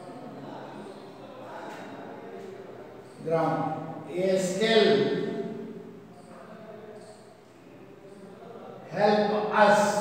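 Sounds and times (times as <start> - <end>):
man's voice: 3.2 - 5.6, 8.9 - 10.0.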